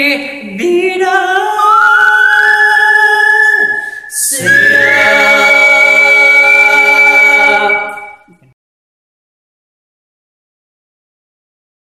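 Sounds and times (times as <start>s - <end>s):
high whistle-like note: 3.3s - 5.9s, 6.9s - 8.5s
male voices holding chord: 4.4s - 5.3s.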